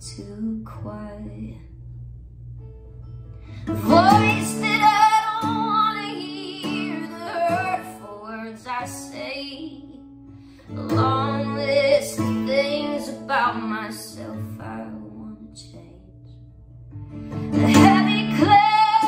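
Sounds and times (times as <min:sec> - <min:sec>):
woman singing: 0:00.0 - 0:01.8, 0:03.6 - 0:10.1, 0:10.7 - 0:16.4, 0:17.5 - 0:19.0.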